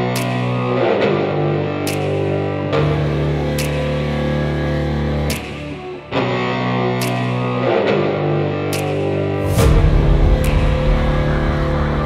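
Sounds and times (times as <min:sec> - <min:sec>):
rock music with distorted guitar: 0:00.0 - 0:12.0.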